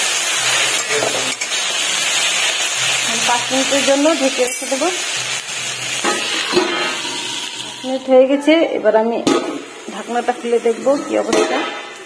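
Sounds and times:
vegetables sizzling in a wok: 0.0 - 12.0.

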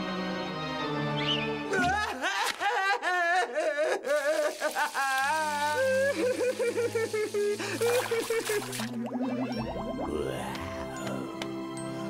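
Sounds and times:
cartoon character wailing and sobbing: 1.7 - 6.6.

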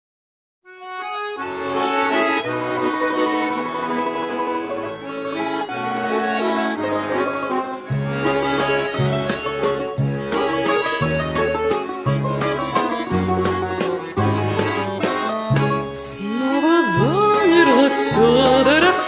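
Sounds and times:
accordion waltz backing track: 0.7 - 19.0
deep bass notes: 5.8 - 19.0.

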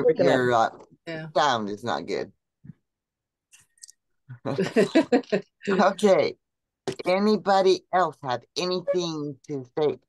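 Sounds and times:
woman laughing: 4.5 - 6.0.

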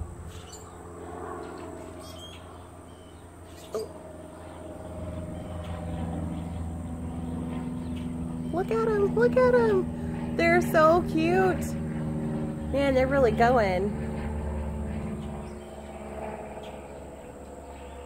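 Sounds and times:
low hum: 0.0 - 18.0.

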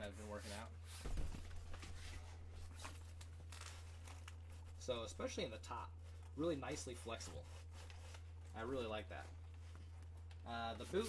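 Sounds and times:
rustling and scraping of pad: 0.0 - 11.0
steady low hum: 0.0 - 11.0.

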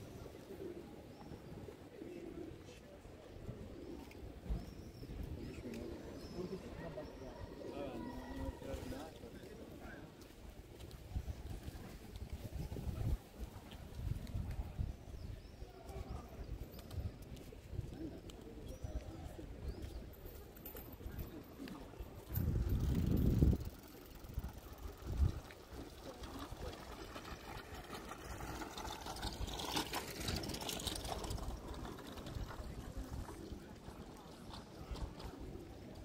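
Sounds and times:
wind gust on microphone: 22.2 - 23.7.

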